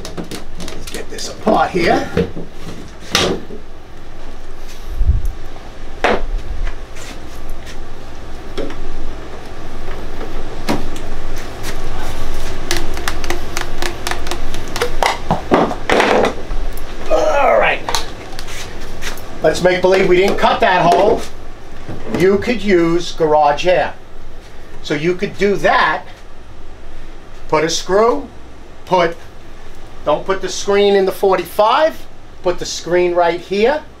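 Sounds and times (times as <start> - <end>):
plastic pipe fittings knocking: 12.7 - 16.3.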